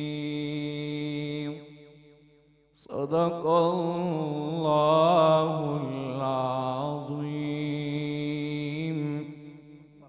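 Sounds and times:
man reciting melodically: 0.0 - 2.1, 2.8 - 10.0.

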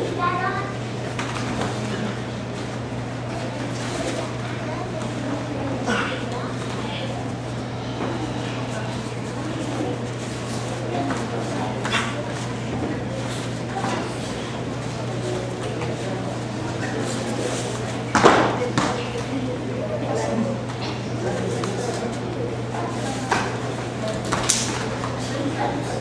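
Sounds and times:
low electrical hum: 0.0 - 26.0
murmur of voices: 0.0 - 26.0.

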